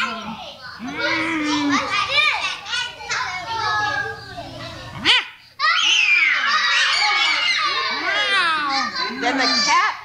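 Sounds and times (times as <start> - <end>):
children shouting and squealing: 0.0 - 10.0.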